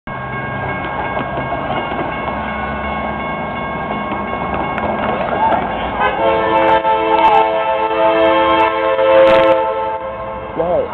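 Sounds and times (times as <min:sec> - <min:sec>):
crossing warning bell ringing: 0:00.1 - 0:10.9.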